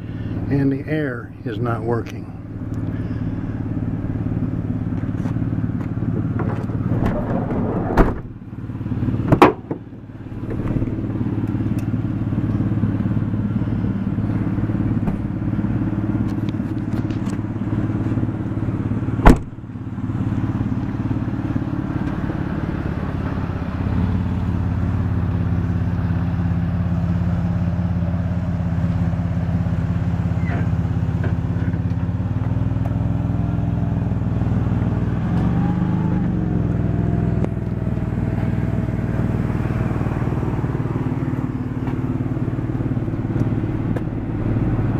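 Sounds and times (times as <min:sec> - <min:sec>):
van engine idling: 0:00.0 - 0:44.9
loud sharp thumps: 0:19.2 - 0:19.6.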